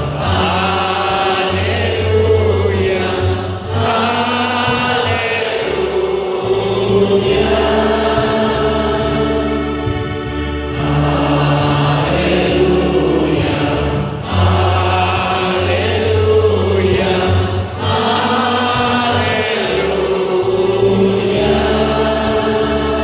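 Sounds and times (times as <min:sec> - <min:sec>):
sustained accompanying chords: 0:00.0 - 0:23.0
voices singing long notes: 0:00.0 - 0:23.0.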